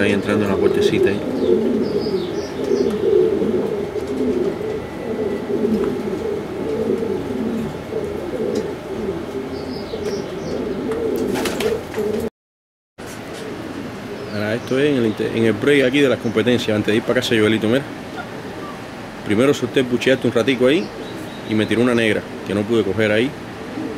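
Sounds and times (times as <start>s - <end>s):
pigeons cooing: 0.0s - 12.3s, 13.2s - 23.9s.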